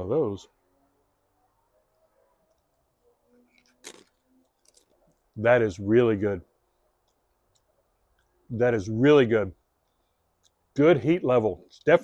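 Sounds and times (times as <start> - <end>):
crisp chip crunch: 3.4 - 5.2.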